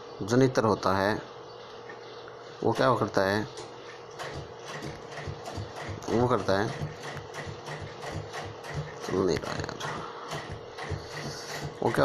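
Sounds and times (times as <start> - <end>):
machine rhythmic clatter: 2.7 - 12.0.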